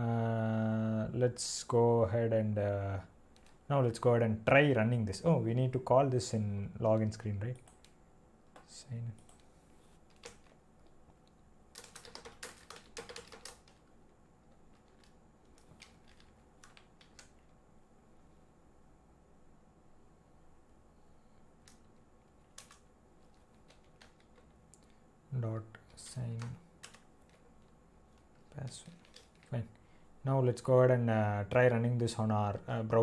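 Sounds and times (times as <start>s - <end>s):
typing on computer keyboard: 10.1s - 10.6s, 11.7s - 13.9s, 14.7s - 17.5s, 21.7s - 25.0s, 25.9s - 29.6s.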